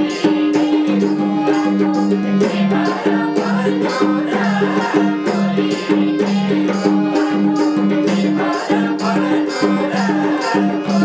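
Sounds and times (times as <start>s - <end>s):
harmonium melody: 0.0s - 11.0s
steady percussion: 0.0s - 11.0s.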